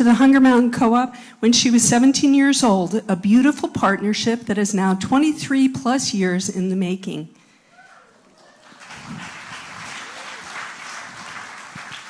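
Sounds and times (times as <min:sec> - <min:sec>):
audience applauding: 0:08.2 - 0:12.0.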